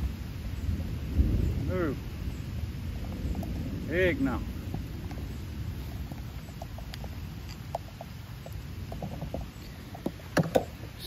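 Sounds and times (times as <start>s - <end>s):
light rain pattering: 0.0s - 11.0s
wind rumble on microphone: 0.0s - 11.0s.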